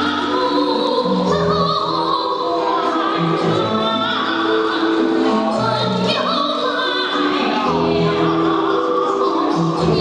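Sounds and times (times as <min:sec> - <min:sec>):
musical accompaniment: 0:00.0 - 0:10.0
woman singing soprano: 0:00.0 - 0:10.0.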